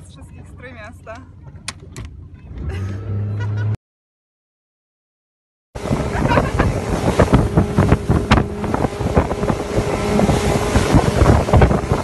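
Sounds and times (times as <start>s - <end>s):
faint boat engine hum: 0.0s - 3.8s, 5.8s - 12.0s
wind buffeting microphone: 5.8s - 12.0s.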